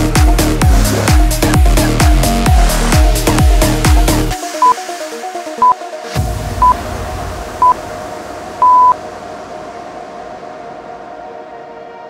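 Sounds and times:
electronic background music: 0.0s - 12.0s
timer beeps: 8.6s - 9.0s.

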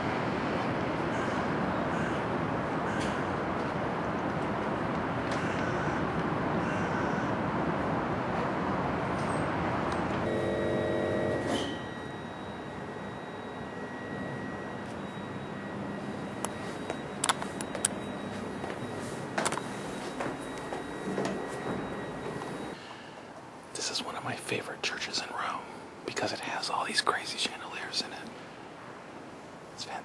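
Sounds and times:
city traffic hum: 0.0s - 30.0s
street ambience: 0.0s - 30.0s
thin steady high tone: 10.2s - 28.1s.

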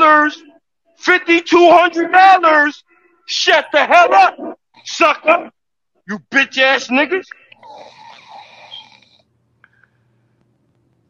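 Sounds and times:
man snoring: 7.6s - 9.3s.

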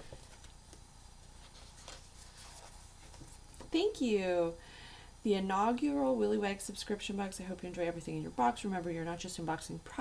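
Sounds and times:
paper and card rustling: 1.4s - 3.7s.

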